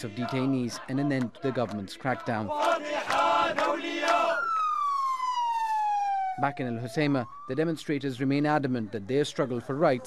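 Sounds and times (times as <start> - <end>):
ambulance siren wailing: 2.5 - 8.5.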